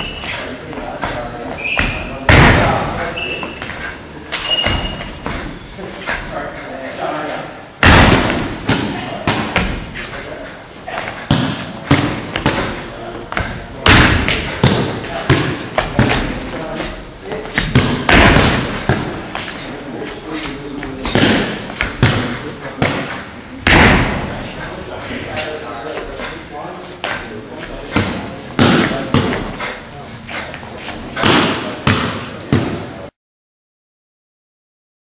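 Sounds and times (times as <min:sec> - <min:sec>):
footwork thuds on wooden floor: 0:04.6 - 0:06.3, 0:11.0 - 0:19.6.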